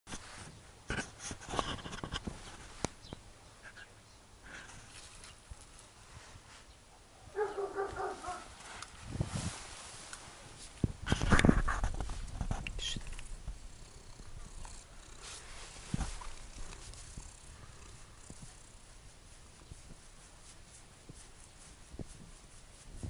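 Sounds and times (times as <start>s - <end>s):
rustling noise: 0.1s - 3.8s, 4.5s - 23.0s.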